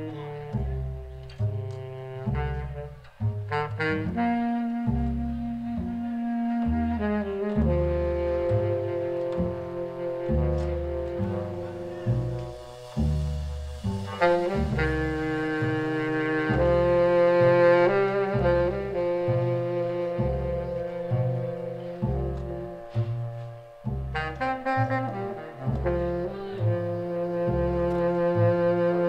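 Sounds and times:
baritone saxophone long notes: 0.0s - 29.0s
plucked double bass: 0.0s - 29.0s
valve trombone long notes: 0.0s - 29.0s.

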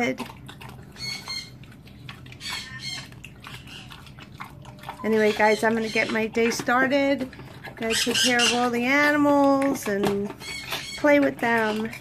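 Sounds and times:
pig chewing wet food: 0.0s - 12.0s.

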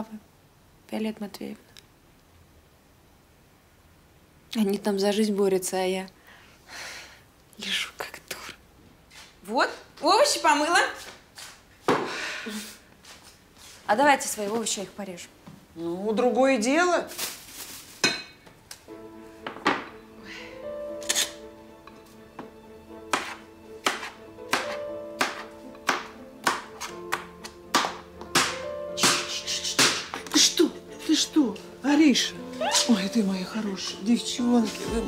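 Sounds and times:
soft sustained music: 18.9s - 35.0s
knife chopping on cutting board: 23.1s - 30.2s
person speaking: 29.0s - 35.0s.

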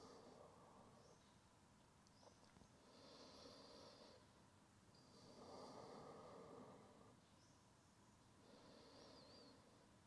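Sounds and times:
deep breaths through nose: 2.8s - 4.3s, 5.0s - 7.2s.

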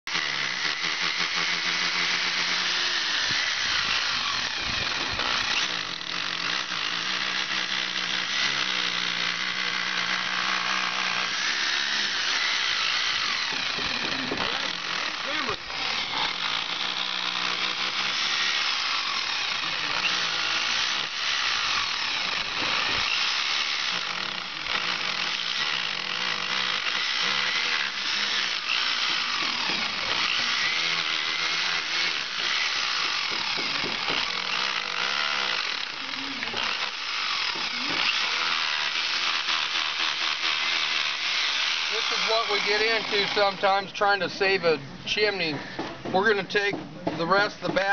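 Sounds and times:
rotary hammer chipping brick: 0.1s - 43.4s.

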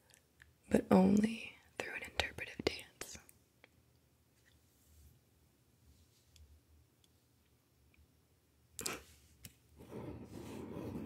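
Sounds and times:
person whispering: 0.8s - 3.3s.

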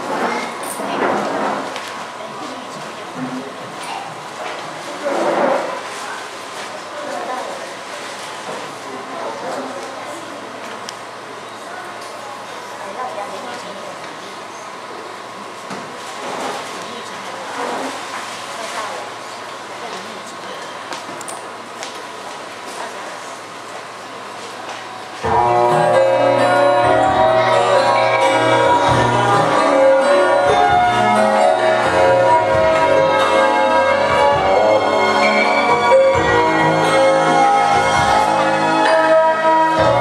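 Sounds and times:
busy indoor room noise: 0.0s - 40.0s
pop ballad backing track over speakers: 25.2s - 40.0s.

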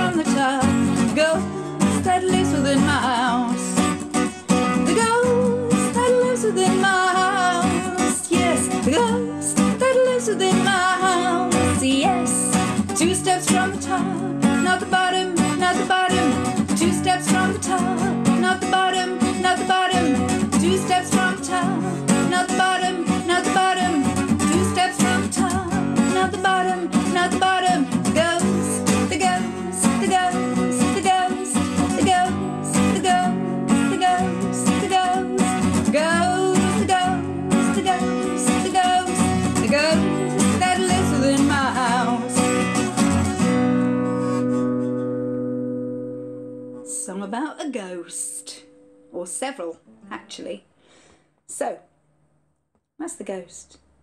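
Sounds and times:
woman singing: 0.0s - 43.1s, 46.8s - 50.6s
acoustic guitar strumming: 0.0s - 50.4s.

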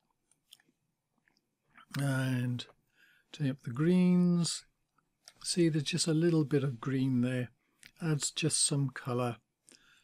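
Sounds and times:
voice: 1.8s - 2.8s, 3.4s - 4.7s, 5.3s - 9.4s.

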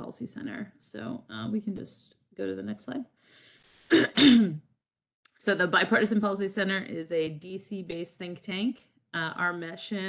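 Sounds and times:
woman clearing her throat: 3.9s - 4.7s.

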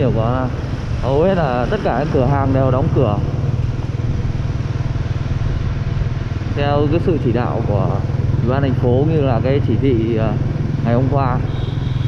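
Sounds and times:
motorbike engine cruising: 0.0s - 12.0s.

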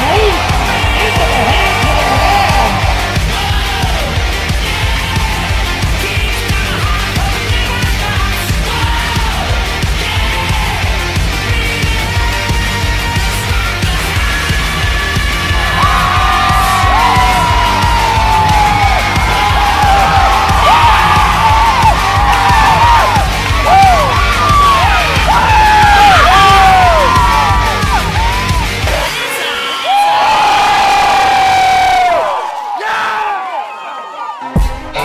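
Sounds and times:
crowd cheering and whooping: 0.0s - 5.8s, 14.0s - 34.6s
music with heavy bass beat: 0.0s - 29.3s.

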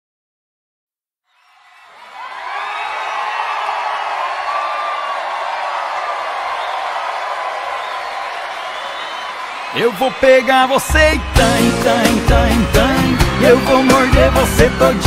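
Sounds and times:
crowd cheering and screaming: 1.3s - 15.0s.

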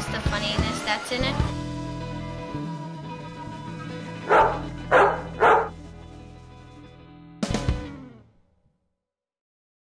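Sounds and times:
background music: 0.0s - 8.4s
dog barking: 4.3s - 5.8s.

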